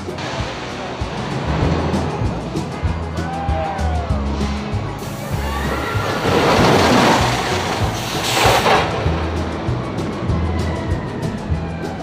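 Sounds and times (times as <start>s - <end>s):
background music: 0.0s - 12.0s
roller coaster rushing: 0.0s - 12.0s.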